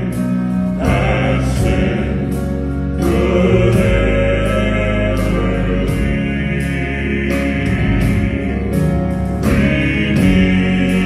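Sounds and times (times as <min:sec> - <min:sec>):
male quartet singing in harmony: 0:00.0 - 0:11.0
piano accompaniment: 0:00.0 - 0:11.0.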